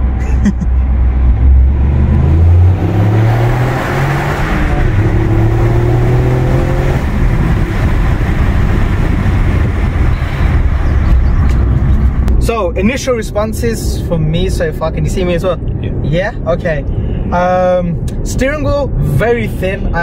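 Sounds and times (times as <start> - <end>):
car engine accelerating hard: 0.0 - 12.3
road noise inside car: 0.0 - 20.0.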